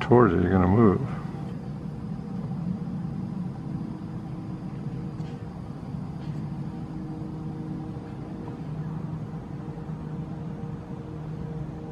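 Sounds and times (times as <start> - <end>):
faint steady hum: 0.0 - 11.9
low outdoor rumble: 0.0 - 11.9.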